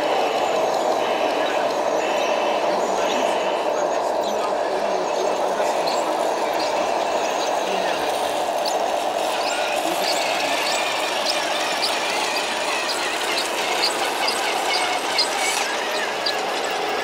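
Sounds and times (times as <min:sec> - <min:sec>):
voices in a large hall: 0:00.0 - 0:13.6
toy truck driving: 0:00.0 - 0:17.0.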